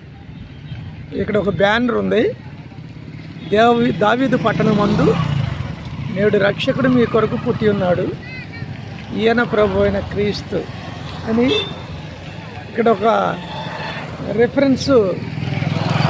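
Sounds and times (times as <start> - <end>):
motorcycles passing: 0.0 - 16.0.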